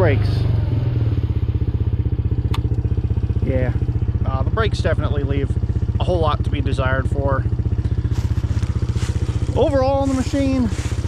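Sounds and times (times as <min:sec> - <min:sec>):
small engine idling: 0:00.0 - 0:11.0
sharp click: 0:02.5 - 0:02.8.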